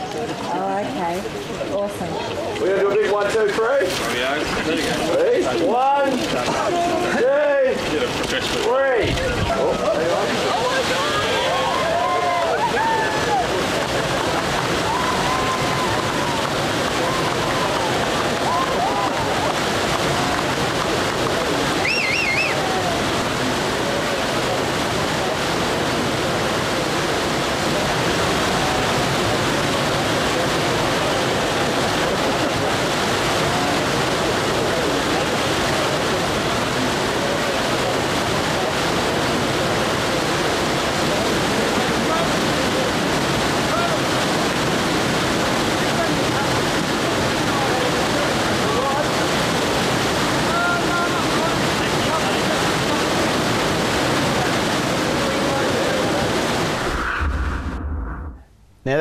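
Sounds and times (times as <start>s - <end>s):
faint crowd voices: 0.0s - 57.8s
water rushing from outlet: 0.0s - 57.8s.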